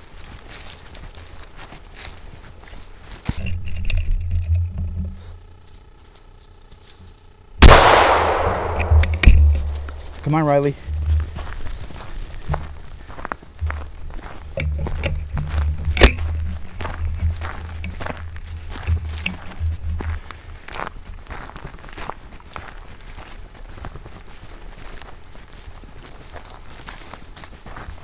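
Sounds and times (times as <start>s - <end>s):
footsteps on dirt trail: 0.0s - 28.0s
sharp bang: 7.6s - 10.2s.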